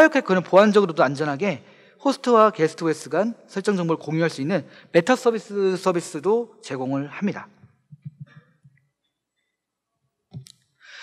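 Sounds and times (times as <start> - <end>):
soft breath: 10.8 - 11.0.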